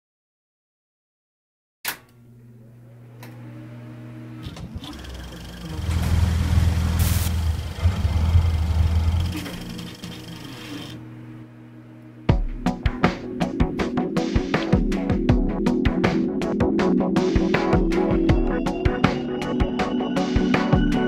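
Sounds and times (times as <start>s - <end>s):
boat engine humming: 4.2s - 12.2s.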